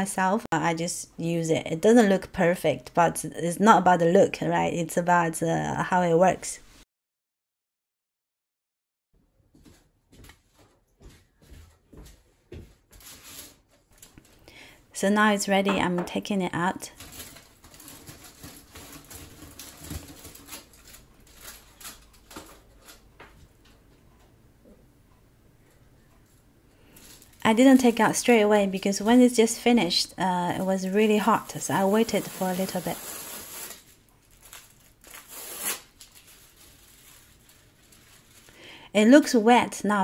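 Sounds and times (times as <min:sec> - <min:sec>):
aluminium foil crinkling: 0:16.8 - 0:23.1, 0:26.9 - 0:29.6, 0:30.6 - 0:38.6.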